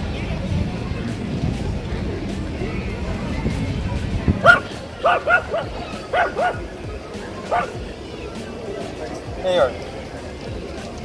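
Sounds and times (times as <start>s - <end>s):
background music: 0.0s - 11.0s
small dog yipping: 4.4s - 6.6s, 7.5s - 7.8s.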